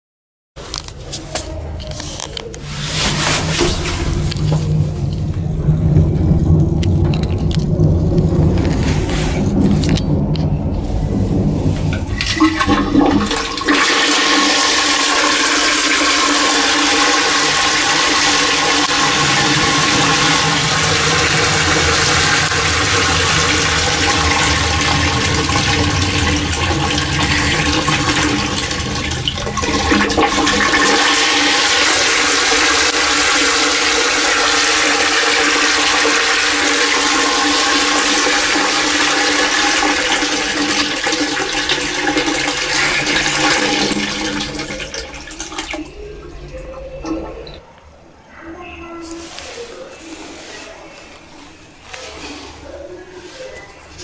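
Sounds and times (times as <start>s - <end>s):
steady hum: 2.6s - 35.0s
toilet flushing water rush: 2.6s - 47.7s.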